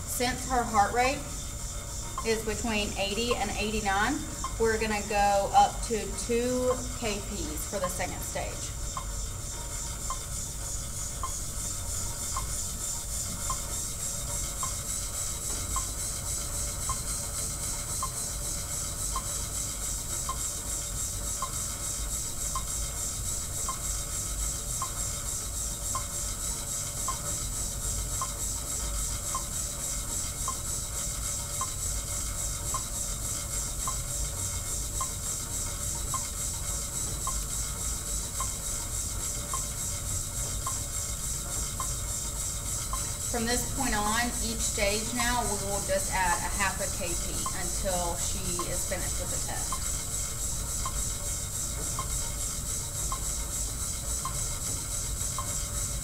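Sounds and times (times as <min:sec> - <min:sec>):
exercise bike flywheel rubbing hiss: 0:00.0 - 0:56.0
faint ticking: 0:00.0 - 0:56.0.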